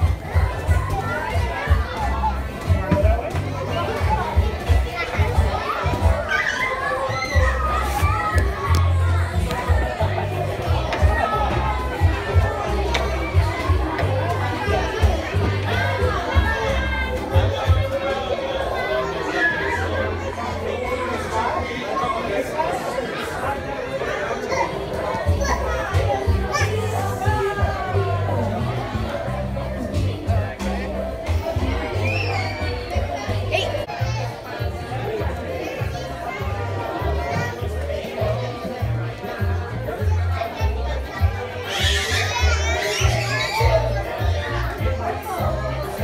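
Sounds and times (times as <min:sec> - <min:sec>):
children playing and calling out: 0:00.0 - 0:46.0
background music: 0:24.5 - 0:46.0.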